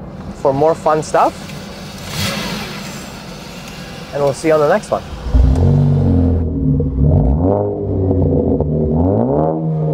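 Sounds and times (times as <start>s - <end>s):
car engine revving: 1.5s - 9.9s.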